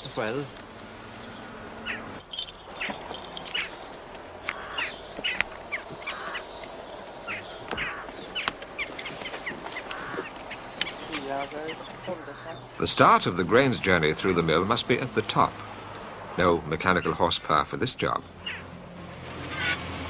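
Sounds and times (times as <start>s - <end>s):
birds chirping: 0.0s - 20.0s.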